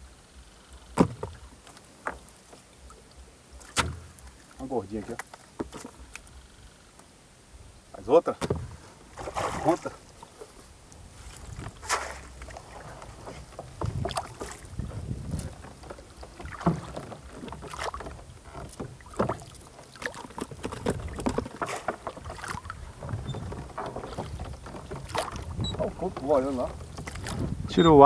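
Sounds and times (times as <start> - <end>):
water splashes: 0.7 - 7.3, 7.9 - 28.0
wind rumble on microphone: 7.5 - 19.5, 20.4 - 28.0
net knocks and rustles: 11.2 - 19.5.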